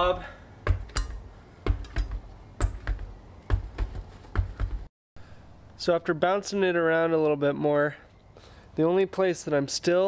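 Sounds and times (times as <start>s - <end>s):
tire thumping on concrete: 0.6s - 4.9s.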